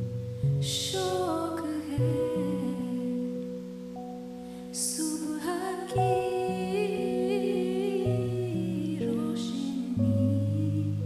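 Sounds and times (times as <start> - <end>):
woman singing with vibrato: 0.6 - 3.4, 4.8 - 11.0.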